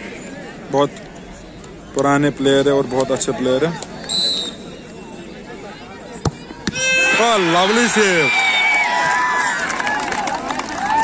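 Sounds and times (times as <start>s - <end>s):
low crowd murmur: 0.0s - 11.0s
football kicked with thud: 6.2s - 6.8s.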